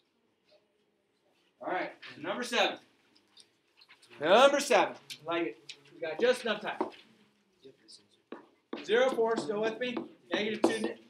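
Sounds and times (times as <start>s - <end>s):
man speaking: 4.2s - 6.9s, 8.8s - 11.0s.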